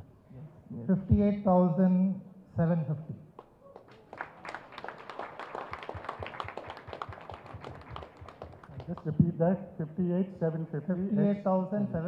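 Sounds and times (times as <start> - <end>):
audience applause: 3.7 - 9.1.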